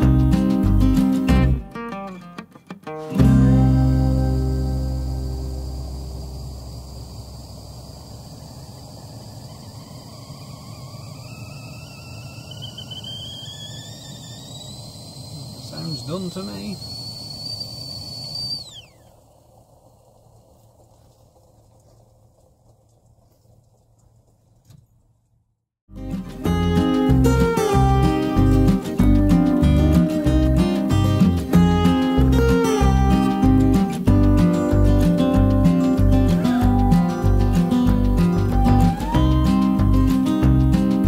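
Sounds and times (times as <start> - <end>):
kettle whistling: 3.2 - 20.6, 26.5 - 41.0
gas stove low rush: 3.2 - 20.9.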